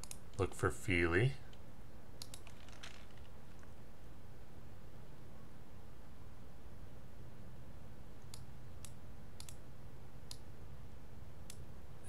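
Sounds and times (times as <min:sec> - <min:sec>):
computer mouse clicks: 0:00.0 - 0:00.4, 0:02.2 - 0:02.6, 0:08.2 - 0:09.6, 0:10.3 - 0:10.5
faint low hum: 0:00.0 - 0:12.0.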